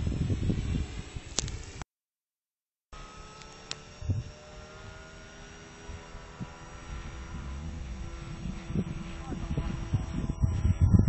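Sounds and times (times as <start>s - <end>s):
distant plane engine drone: 0.0s - 1.8s, 3.0s - 11.0s.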